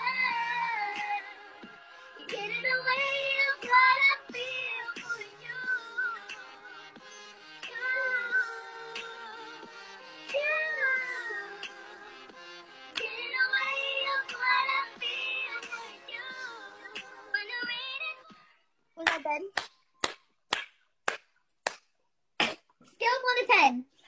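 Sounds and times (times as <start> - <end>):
backing music: 0.0 - 18.4
woman singing pop melody: 0.0 - 18.6.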